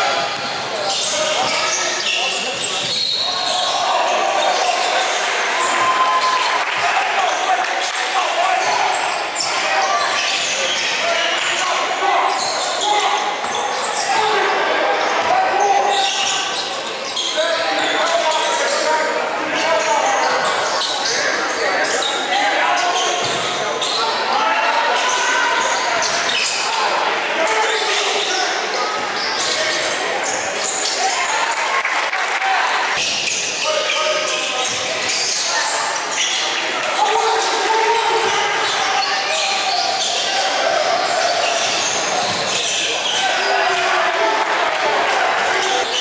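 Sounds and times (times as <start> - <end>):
players and spectators voices: 0.0 - 46.0.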